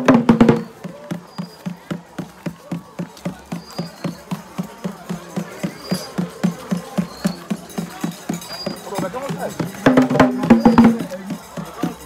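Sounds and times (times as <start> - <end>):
hand percussion knocking: 0.0 - 12.0.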